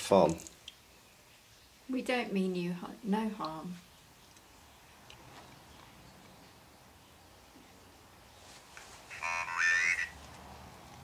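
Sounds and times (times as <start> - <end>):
synthesized voice speaking word: 9.1 - 10.1.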